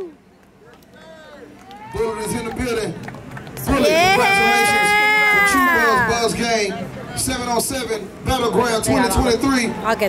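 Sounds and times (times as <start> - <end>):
man shouting a held note: 3.8 - 6.2
man speaking: 3.9 - 6.6.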